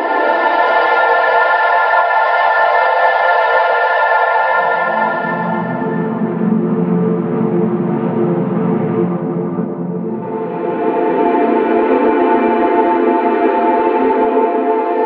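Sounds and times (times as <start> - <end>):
lower sustained tone: 0.0 - 15.0
saxophone with long reverb: 0.0 - 15.0.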